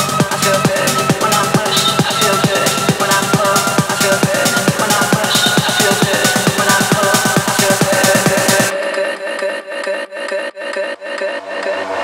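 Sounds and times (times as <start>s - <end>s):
scratchy rhythmic synth: 0.0s - 12.0s.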